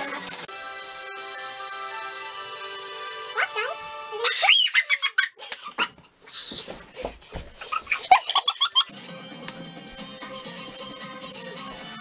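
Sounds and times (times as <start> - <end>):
background music with held tones: 0.0 - 4.4, 8.8 - 12.0.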